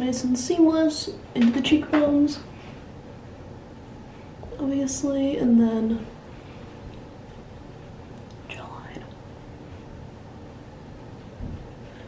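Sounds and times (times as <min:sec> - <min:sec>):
low room noise: 0:00.0 - 0:12.0
soft breathy whisper: 0:08.4 - 0:10.0.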